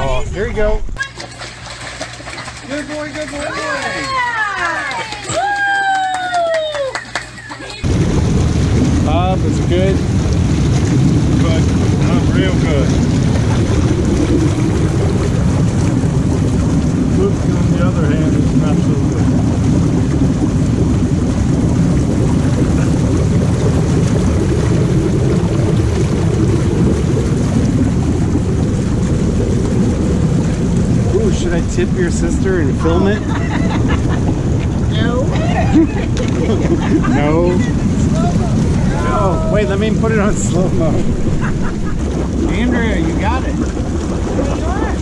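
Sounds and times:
hot tub jets churning water: 0:00.0 - 0:45.0.

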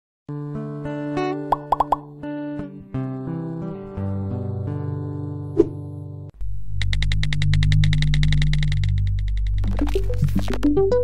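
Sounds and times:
plop sound effects: 0:01.5 - 0:02.0.

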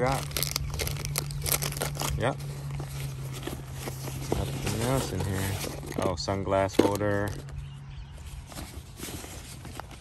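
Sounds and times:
hand rummaging in backpack: 0:00.0 - 0:07.6, 0:08.3 - 0:10.0.

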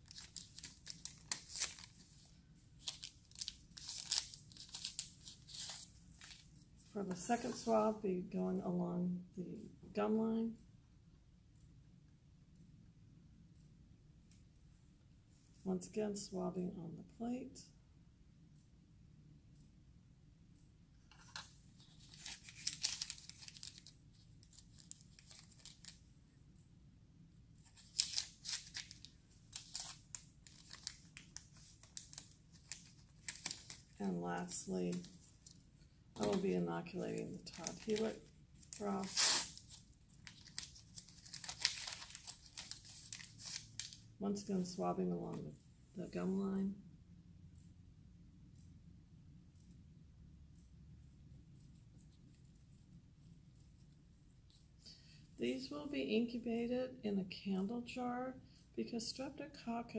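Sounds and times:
paper wrapper tearing and crinkling: 0:00.0 - 0:02.1, 0:02.8 - 0:06.4, 0:21.1 - 0:26.0, 0:27.6 - 0:35.5, 0:36.2 - 0:36.4, 0:37.4 - 0:44.0.

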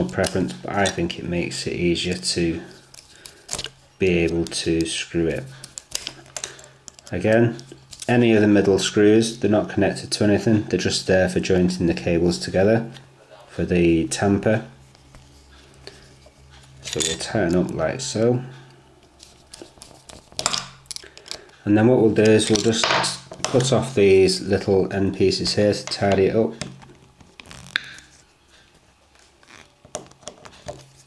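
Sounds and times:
steady low hum: 0:00.0 - 0:31.0
fiddling with plastic contact: 0:02.0 - 0:08.2, 0:19.0 - 0:21.6.

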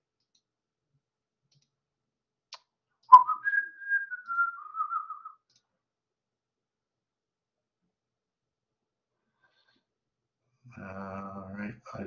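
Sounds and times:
clicks: 0:00.1 - 0:00.6, 0:01.4 - 0:01.8, 0:05.4 - 0:05.8
person whistling: 0:03.1 - 0:05.4.

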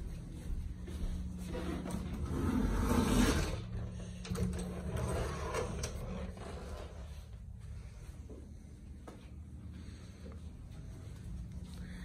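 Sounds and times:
closet door scraping along track: 0:01.5 - 0:07.3.

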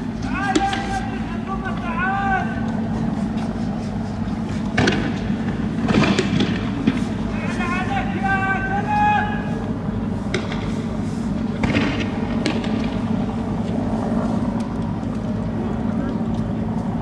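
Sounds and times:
engines idling: 0:00.0 - 0:17.0
men shouting: 0:00.2 - 0:04.4, 0:07.3 - 0:09.8
sharp bangs: 0:04.6 - 0:08.2, 0:10.2 - 0:13.4.

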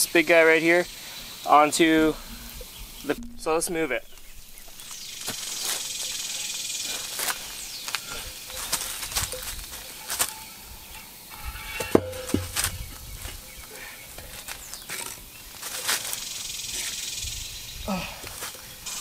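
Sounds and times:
steady high hiss: 0:00.0 - 0:17.8, 0:18.4 - 0:19.0
pot scraping and knocking on concrete: 0:11.3 - 0:12.8.

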